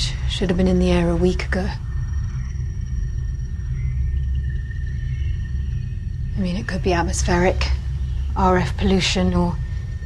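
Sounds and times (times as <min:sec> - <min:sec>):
deep steady rumble: 0:00.0 - 0:10.0.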